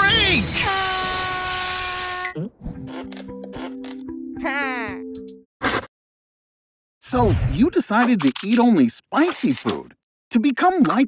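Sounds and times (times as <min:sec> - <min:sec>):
shrill brake squeal: 0:00.0 - 0:02.4.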